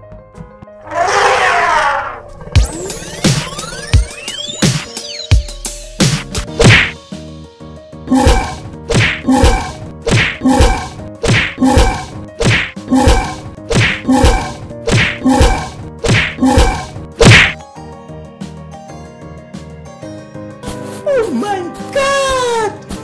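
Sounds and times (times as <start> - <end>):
cartoon whacks with pitched ring: 8.2 - 17.6.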